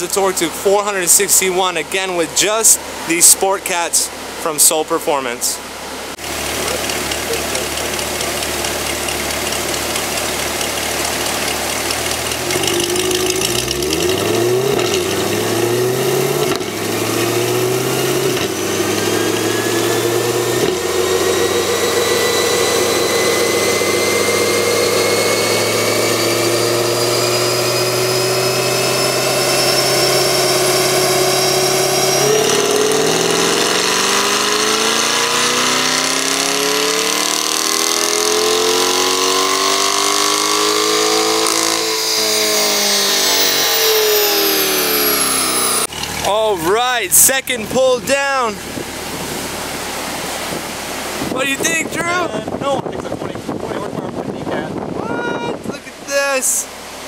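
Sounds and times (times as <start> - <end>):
high whine: 0.0 - 57.0
car engine revving: 5.6 - 54.7.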